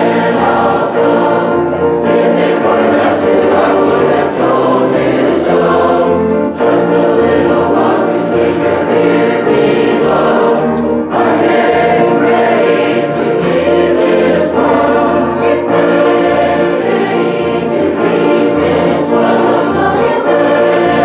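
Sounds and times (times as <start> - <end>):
choir singing a hymn: 0.0 - 21.0.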